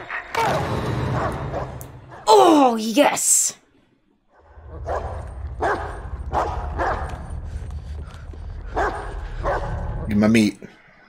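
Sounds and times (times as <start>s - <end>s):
large dog barking: 4.4s - 7.2s, 8.7s - 9.8s.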